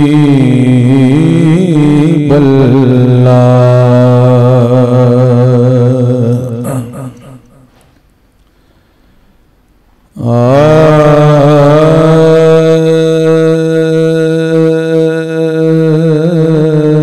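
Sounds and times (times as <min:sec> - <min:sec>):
man singing into a microphone: 0:00.0 - 0:07.8, 0:10.1 - 0:17.0.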